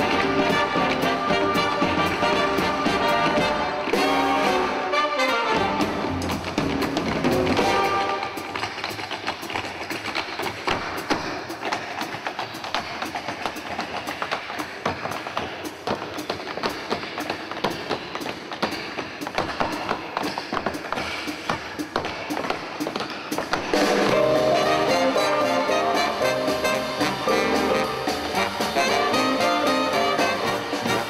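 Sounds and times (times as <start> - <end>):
rapid percussive taps and clicks: 6.1 - 25.6.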